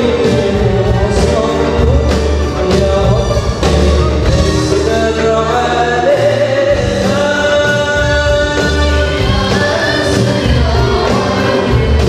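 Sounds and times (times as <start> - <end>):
amplified band playing: 0.0 - 12.0.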